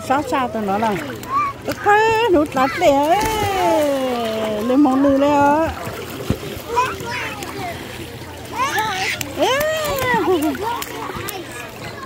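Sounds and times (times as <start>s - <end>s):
water splashing in pool: 0.0s - 12.0s
children calling out: 8.5s - 12.0s.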